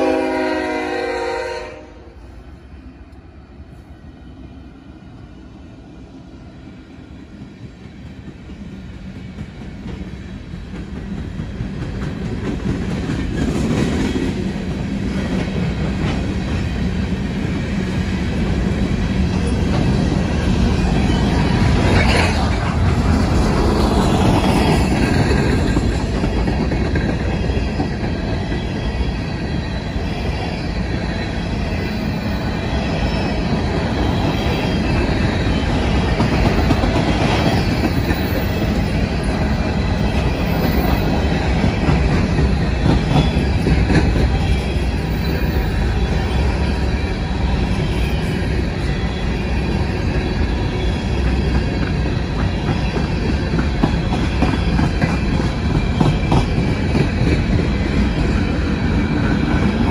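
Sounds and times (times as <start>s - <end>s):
freight train wheels rumbling: 0.0s - 59.9s.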